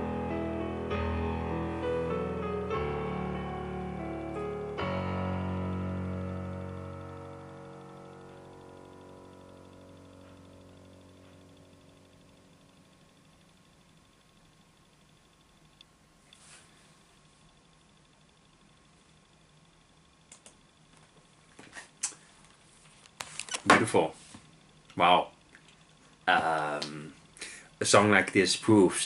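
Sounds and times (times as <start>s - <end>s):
piano chords: 0.0s - 13.8s.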